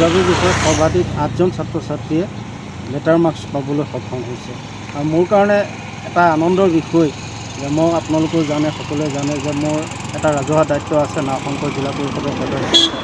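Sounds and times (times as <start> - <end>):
man speaking: 0.0 - 2.3, 2.9 - 12.9.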